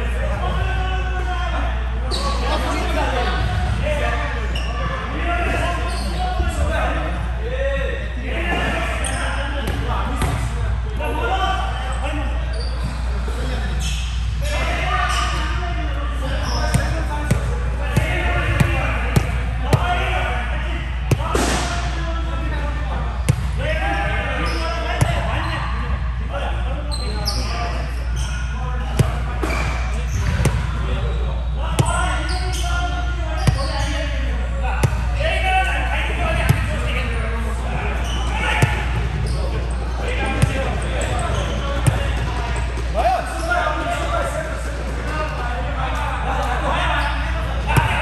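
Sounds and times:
background chatter: 0.0s - 48.0s.

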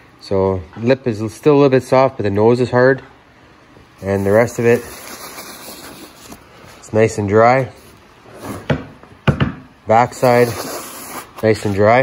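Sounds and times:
knocks on wooden board: 8.7s - 9.7s.

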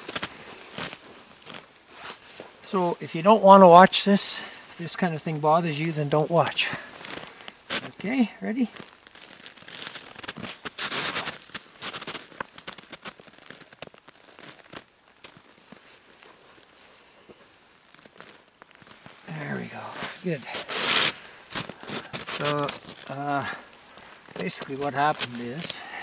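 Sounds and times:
person's voice: 2.7s - 6.9s, 7.8s - 8.8s, 19.3s - 20.6s, 22.3s - 23.6s, 24.4s - 26.0s
bird carcass crackling and tearing: 8.8s - 16.8s, 17.8s - 19.2s, 20.7s - 26.0s.

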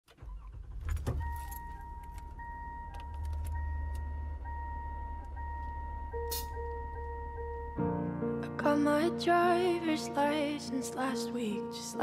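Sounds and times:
car engine rumbling: 0.0s - 9.1s
high warning tone: 1.1s - 8.1s.

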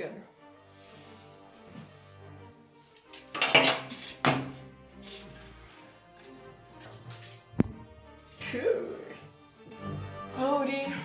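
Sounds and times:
quiet background music: 0.0s - 11.0s
hard objects clattering on table: 3.2s - 4.6s.

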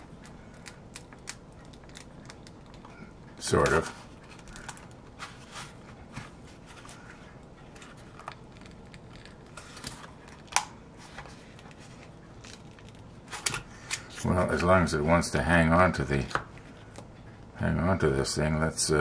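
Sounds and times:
rubber mold crackling and tearing: 0.0s - 7.0s, 7.7s - 14.1s.

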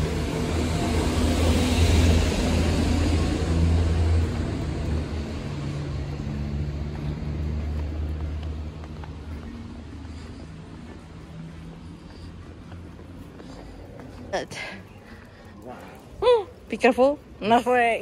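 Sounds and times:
vehicle engine running: 0.0s - 14.3s
road noise: 0.0s - 18.0s.

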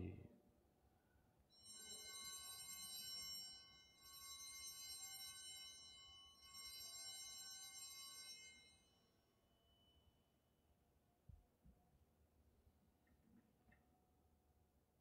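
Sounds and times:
altar bells ringing: 1.5s - 10.0s.

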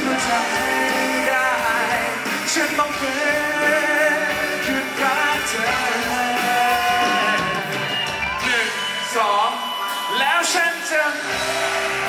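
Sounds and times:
live pop band playing: 0.0s - 12.0s
man singing: 0.0s - 12.0s.

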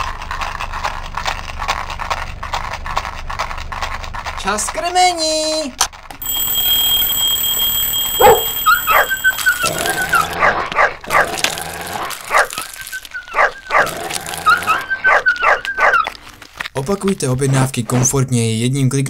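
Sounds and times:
high-pitched ringing tone: 6.2s - 10.4s
dogs barking and yipping: 6.4s - 11.5s, 12.1s - 16.4s
deep dog bark: 8.2s - 8.6s.

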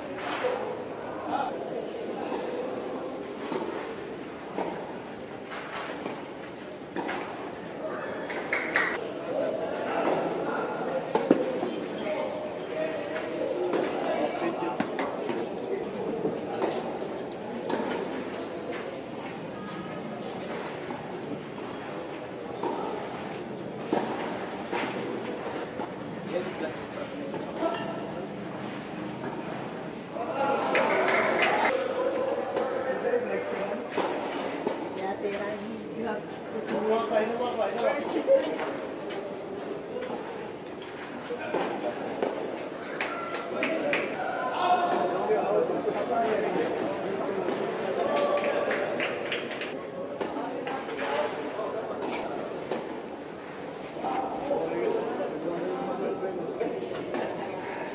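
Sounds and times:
spectators chattering: 6.7s - 57.9s.

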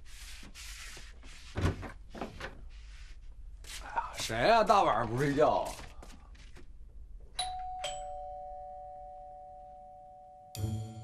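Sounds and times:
two-tone doorbell chime: 7.4s - 11.0s.

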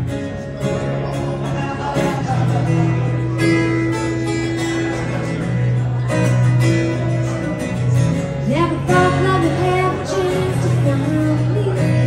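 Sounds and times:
acoustic guitar strumming: 0.0s - 12.0s
person singing: 8.4s - 12.0s.

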